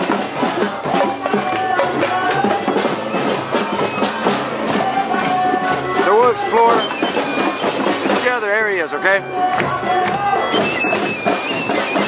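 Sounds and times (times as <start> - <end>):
drums beating steady rhythm: 0.0 - 12.0.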